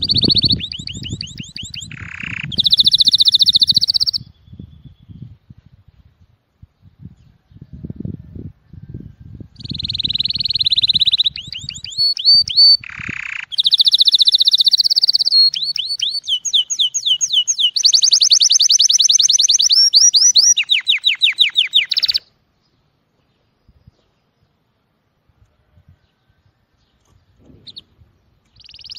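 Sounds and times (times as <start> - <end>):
canary singing: 0.0 - 5.2, 9.6 - 22.4, 27.6 - 28.9.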